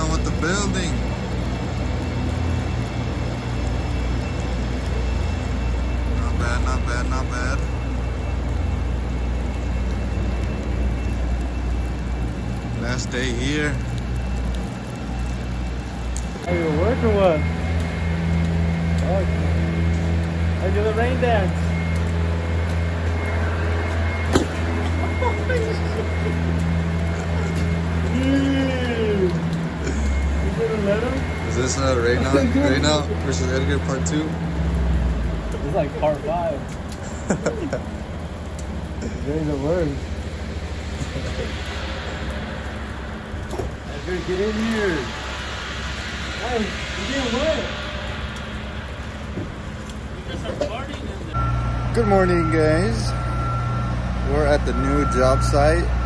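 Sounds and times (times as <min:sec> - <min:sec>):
loud rumble: 0:00.0 - 0:56.0
low machine hum: 0:00.0 - 0:56.0
even hiss: 0:38.9 - 0:56.0.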